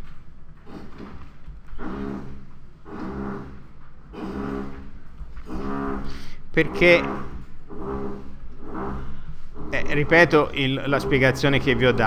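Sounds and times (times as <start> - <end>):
construction machinery hum: 0.0 - 12.0
mechanical drone: 0.6 - 12.0.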